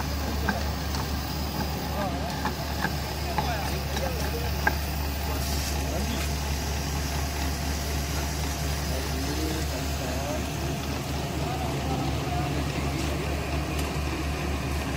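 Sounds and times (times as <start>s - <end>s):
faint voices: 0.0s - 14.9s
low machine hum: 0.0s - 14.9s.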